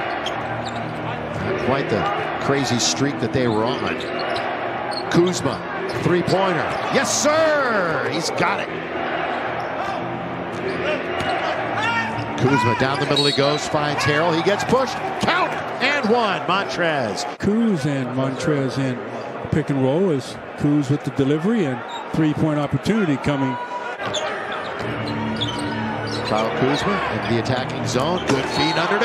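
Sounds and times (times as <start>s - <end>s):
arena background music: 0.0s - 19.0s, 22.6s - 29.0s.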